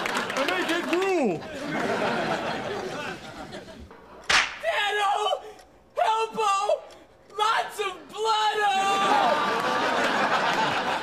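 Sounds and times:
sharp smack: 4.3 - 4.7.

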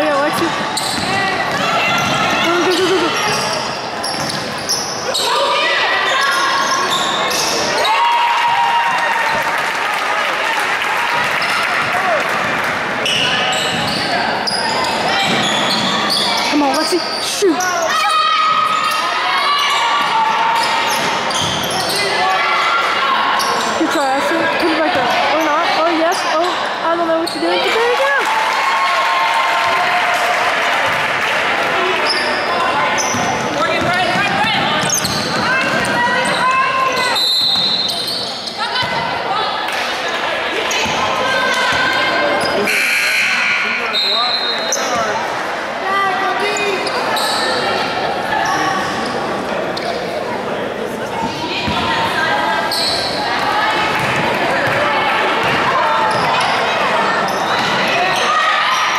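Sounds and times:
voices echoing in a hall: 0.0 - 58.9.

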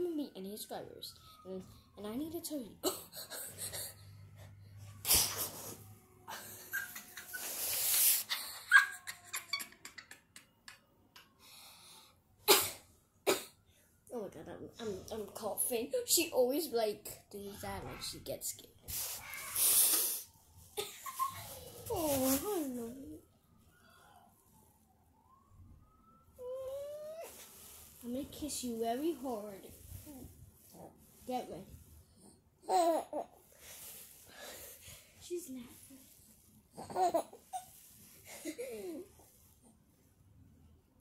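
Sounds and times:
child coughing: 2.8 - 3.9, 12.5 - 13.6.

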